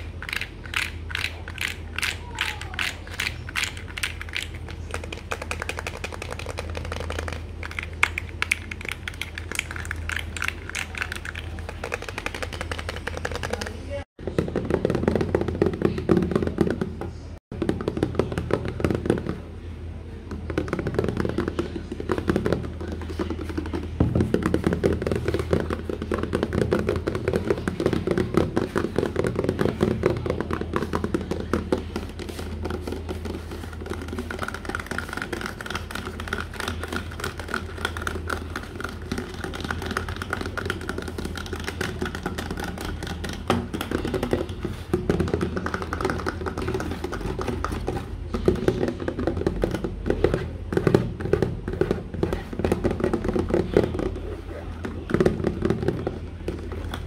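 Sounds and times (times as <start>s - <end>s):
fingernails tapping plastic spray bottle: 0.0s - 13.8s, 20.3s - 54.2s.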